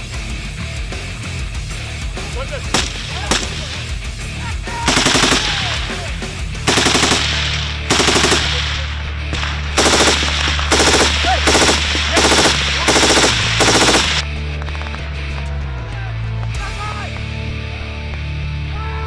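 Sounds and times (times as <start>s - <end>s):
machine gun bursts: 2.8s - 3.8s, 4.9s - 6.0s, 6.7s - 14.2s.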